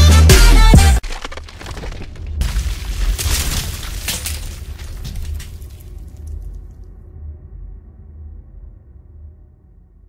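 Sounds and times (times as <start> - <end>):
cracking crumbling stone: 1.0 - 6.6
deep steady rumble: 4.7 - 10.0.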